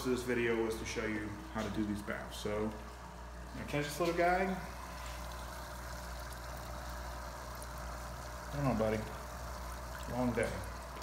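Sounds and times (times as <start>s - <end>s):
air pump humming: 0.0s - 11.0s.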